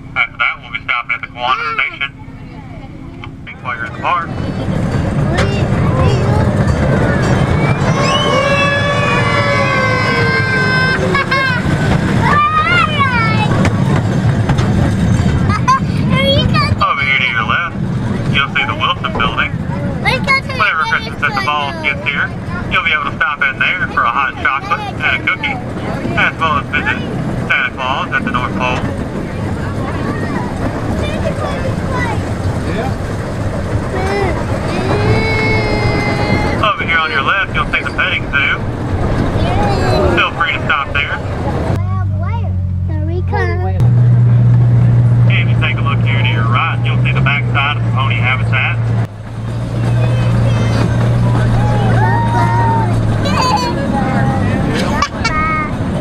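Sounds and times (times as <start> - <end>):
indistinct passenger voices: 0.0 - 56.0
tour train engine hum: 0.0 - 56.0.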